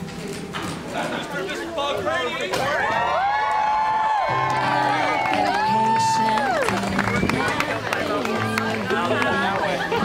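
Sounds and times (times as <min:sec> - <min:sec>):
song with singing voice: 0:04.3 - 0:10.0.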